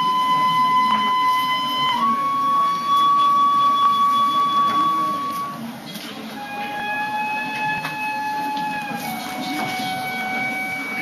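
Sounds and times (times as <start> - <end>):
wind instrument long note: 0.0 - 5.7, 6.4 - 11.0.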